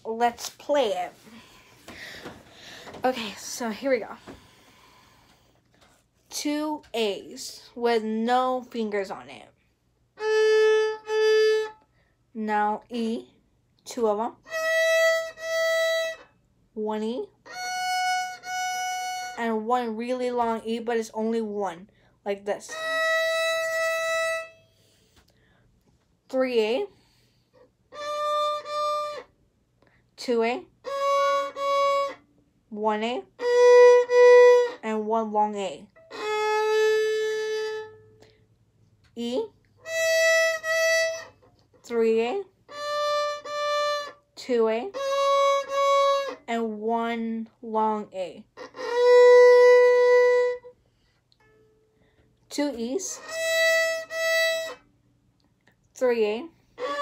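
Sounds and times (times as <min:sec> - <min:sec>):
violin bowed long note: 0:10.2 - 0:11.8, 0:14.4 - 0:16.3, 0:17.5 - 0:19.6, 0:22.7 - 0:24.8, 0:27.9 - 0:29.3, 0:30.8 - 0:32.3, 0:33.4 - 0:35.1, 0:36.0 - 0:38.3, 0:39.8 - 0:41.4, 0:42.7 - 0:44.2, 0:44.9 - 0:46.5, 0:48.6 - 0:50.8, 0:53.0 - 0:54.8, 0:56.8 - 0:57.0.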